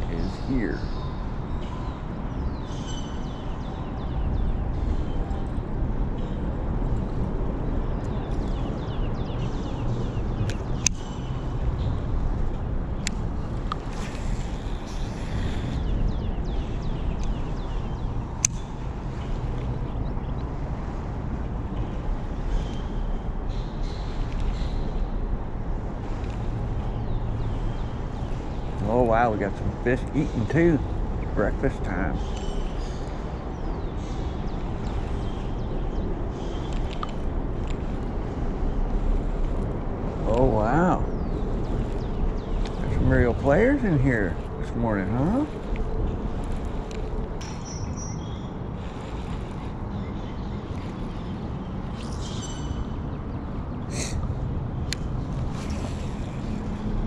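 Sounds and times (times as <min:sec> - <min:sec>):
road traffic rumble: 0:00.0 - 0:57.0.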